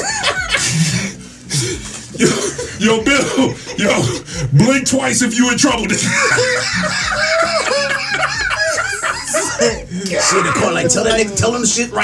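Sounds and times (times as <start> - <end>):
people laughing loudly: 0.0 - 1.2, 5.6 - 12.0.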